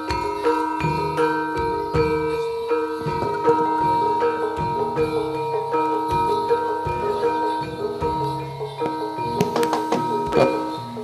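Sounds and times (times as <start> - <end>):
gamelan metallophones and gongs: 0.0 - 11.0.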